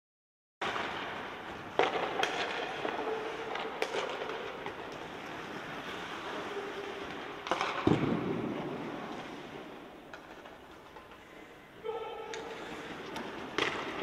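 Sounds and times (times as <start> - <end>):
sticks cracking pucks: 0.6 - 11.4, 12.2 - 14.0
skates scraping on ice: 0.6 - 14.0.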